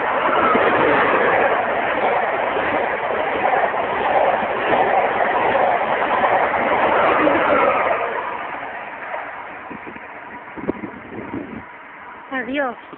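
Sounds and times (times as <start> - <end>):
train passing rush: 0.0 - 12.9.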